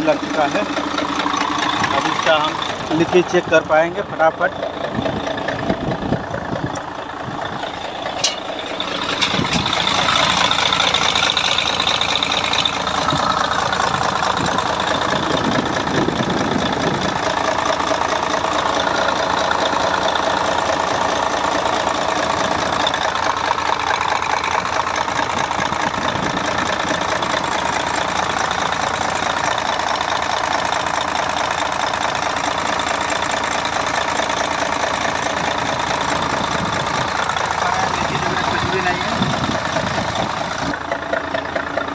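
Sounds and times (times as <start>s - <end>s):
truck diesel engine idling: 0.0s - 41.9s.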